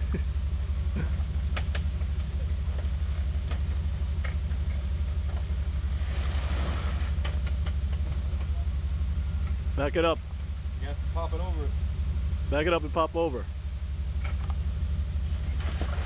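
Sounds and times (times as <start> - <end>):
engine running at low revs: 0.0 - 16.0.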